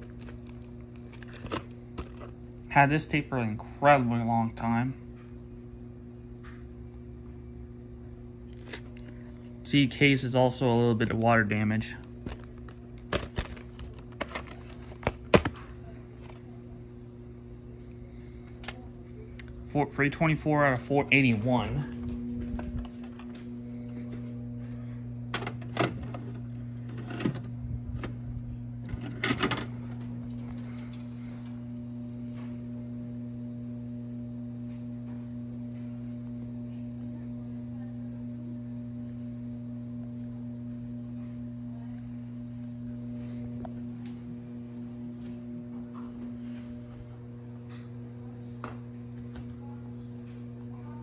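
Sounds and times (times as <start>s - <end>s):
low hum: 0.0s - 51.0s
video cassette deck clicks and clunks: 28.9s - 30.0s.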